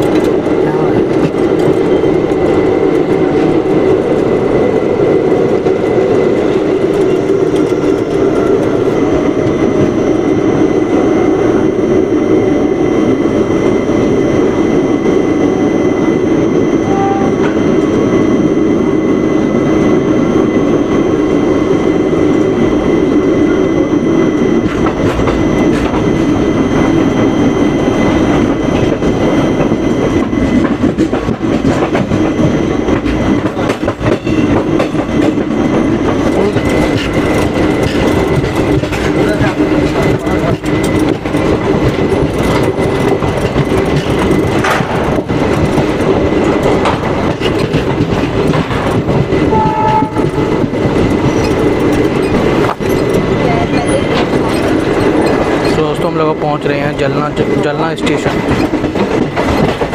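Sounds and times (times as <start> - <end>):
train wheels rumbling on rails: 0.0 - 59.9
wheels clicking over rail joints: 29.6 - 56.0.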